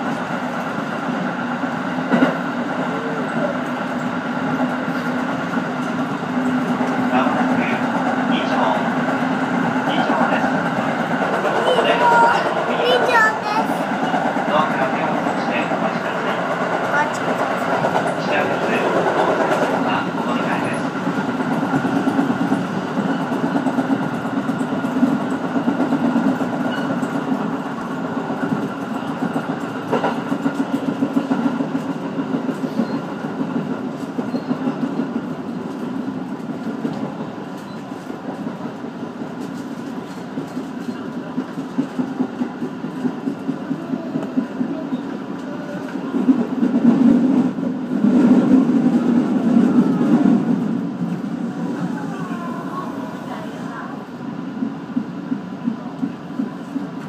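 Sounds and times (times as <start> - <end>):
train wheels rumbling on track: 0.0 - 57.0.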